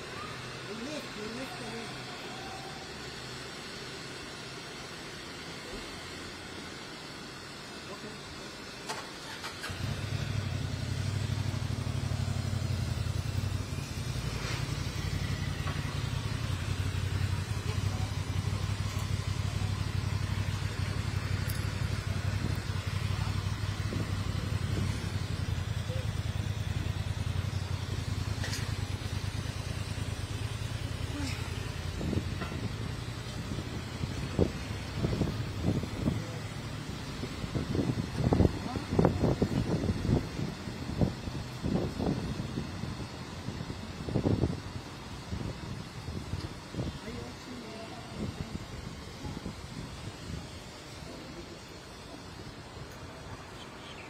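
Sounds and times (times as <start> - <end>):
engine rumbling: 0.0 - 54.0.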